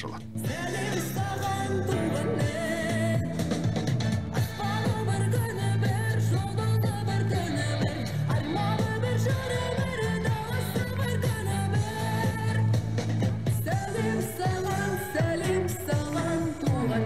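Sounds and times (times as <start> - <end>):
bass line: 0.0 - 17.0
woman singing pop song: 0.4 - 17.0.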